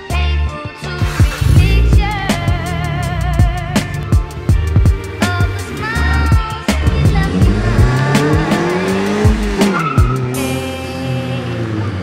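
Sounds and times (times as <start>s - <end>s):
music with heavy bass beat: 0.8s - 10.9s
car engine revving: 1.0s - 12.0s.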